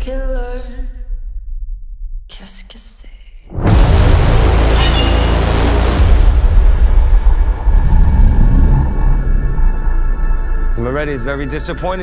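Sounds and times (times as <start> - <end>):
steady low rumble: 0.4 - 10.5.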